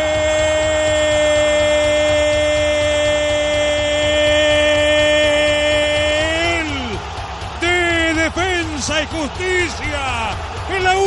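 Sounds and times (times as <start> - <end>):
commentator shouting: 0.0 - 11.0
crowd noise: 0.0 - 11.0.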